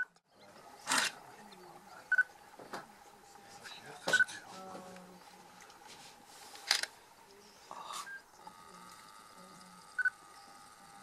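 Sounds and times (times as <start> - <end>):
faint background hiss: 0.1 - 11.0.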